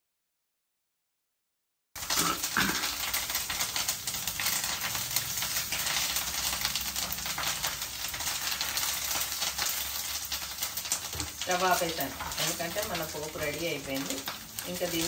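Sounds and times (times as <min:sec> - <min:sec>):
leaves sizzling in hot oil: 0:02.0 - 0:15.0.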